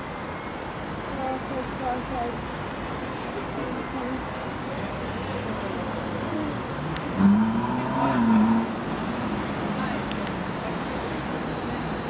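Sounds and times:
distant road traffic: 0.0 - 12.0
vehicle engine passing: 5.4 - 10.6.

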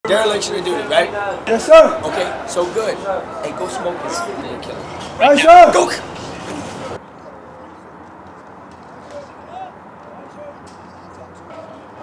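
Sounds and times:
distant shouted voices: 0.1 - 7.9, 9.0 - 12.0.

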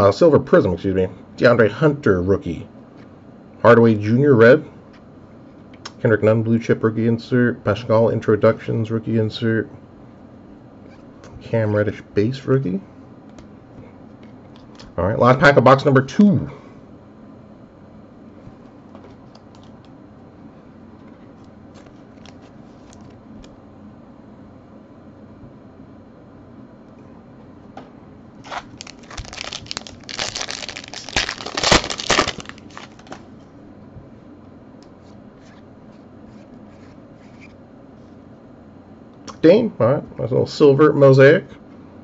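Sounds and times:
cards being handled: 21.3 - 23.6, 28.4 - 33.3
foil wrapper tearing and crinkling: 28.4 - 33.2.

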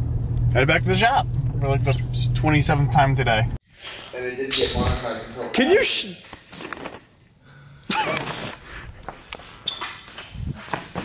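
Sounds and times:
handling and movement noises: 6.2 - 7.2
footsteps: 9.0 - 11.0.

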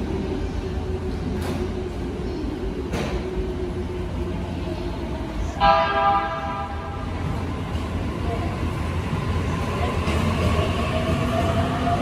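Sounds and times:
train rumbling: 0.0 - 12.0
train horn: 5.6 - 7.0.

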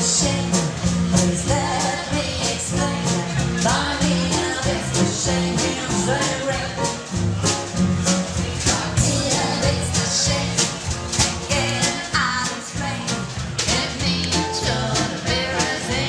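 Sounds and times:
double bass: 0.0 - 16.0
guitar: 0.0 - 16.0
jazz band playing: 0.0 - 16.0.

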